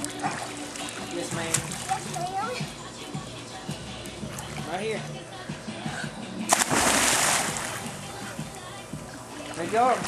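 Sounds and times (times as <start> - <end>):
splash into pool: 6.5 - 7.8.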